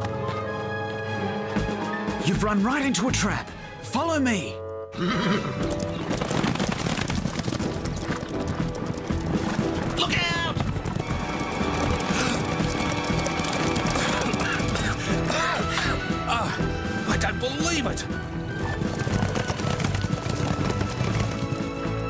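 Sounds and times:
dramatic music: 0.0 - 6.2, 7.4 - 22.0
horses whinnying: 4.9 - 16.8, 18.5 - 22.0
horses galloping hoofbeats: 4.9 - 22.0.

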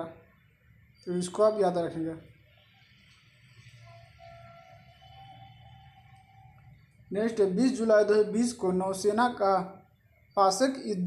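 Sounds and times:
faint distant music: 0.0 - 11.0.

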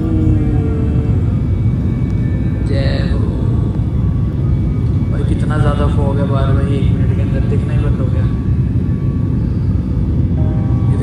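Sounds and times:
jet engine rumble in cabin: 0.0 - 11.0.

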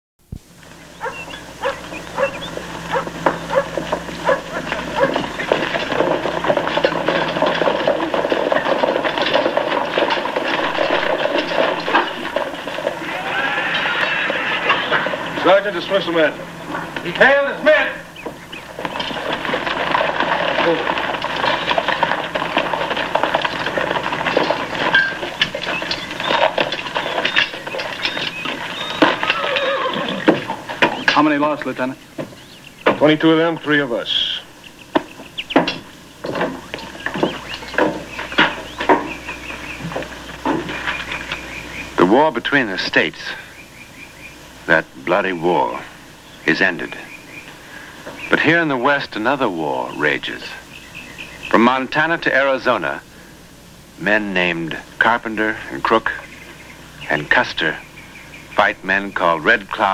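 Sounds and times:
horses' hooves clattering: 0.6 - 53.1, 53.9 - 59.9
dog barking: 1.0 - 5.3
men's indistinct voices: 10.5 - 24.7, 30.2 - 34.6, 42.0 - 43.6, 44.6 - 50.7, 54.0 - 56.4, 57.0 - 59.9
men shouting: 12.9 - 18.2.

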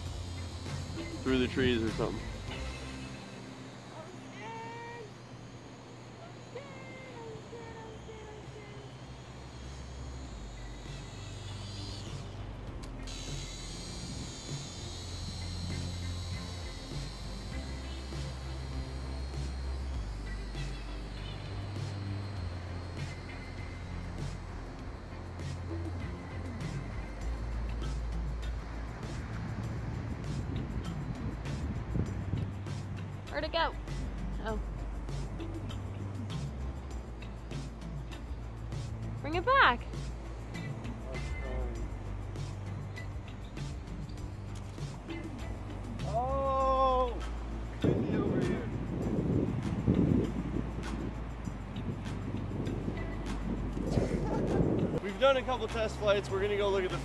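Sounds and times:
background music with deep bass: 0.0 - 57.0.

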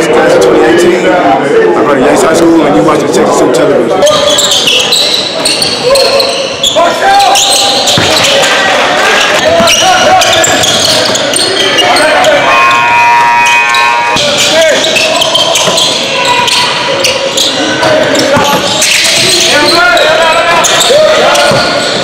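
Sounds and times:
voices of players and spectators: 0.0 - 22.0
steady pitched tone: 12.1 - 15.3.

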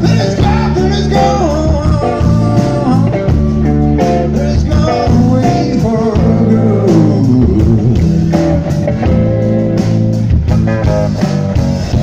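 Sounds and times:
electric blues band playing: 0.0 - 12.0.

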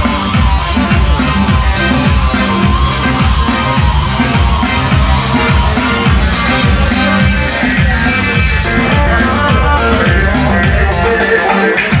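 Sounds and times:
deep bass notes: 0.0 - 12.0
live band dance music: 0.0 - 12.0.

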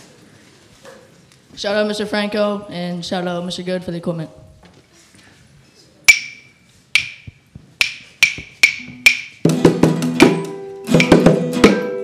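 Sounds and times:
band with guitar and keyboard: 8.9 - 12.0.

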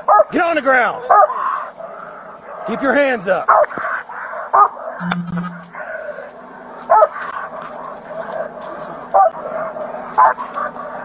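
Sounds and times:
dog barking: 0.0 - 0.3, 1.0 - 2.8, 3.4 - 5.0, 6.9 - 11.0.

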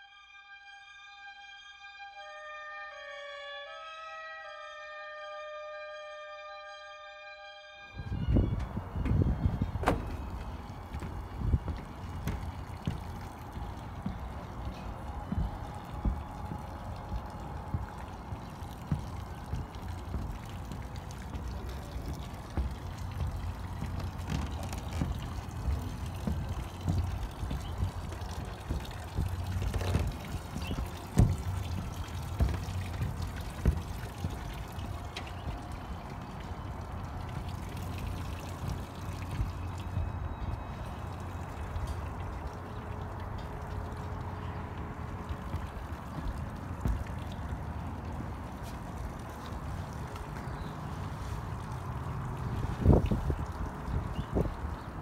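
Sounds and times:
footsteps on metal deck: 7.9 - 55.0
knocks: 8.3 - 17.9, 22.1 - 35.7.

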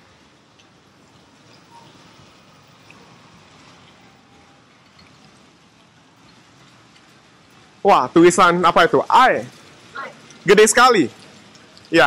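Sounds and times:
watery hiss of wet street: 0.0 - 12.0.

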